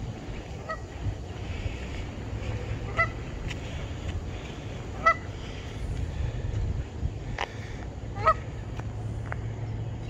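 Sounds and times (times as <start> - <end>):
goose honking: 0.6 - 1.0, 2.4 - 3.3, 5.0 - 5.5, 8.1 - 8.5.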